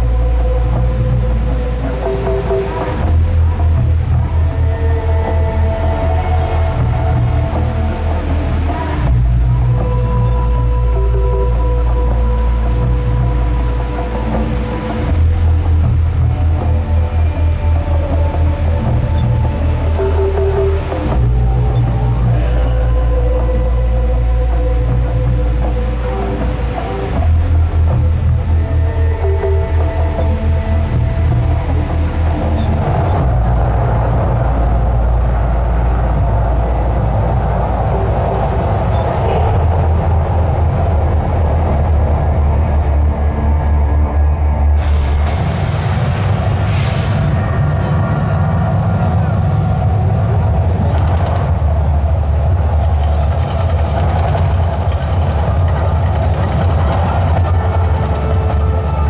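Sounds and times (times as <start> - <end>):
deep rumbling music with drumming: 0.0 - 59.0
rushing flame and water jets: 44.8 - 59.0.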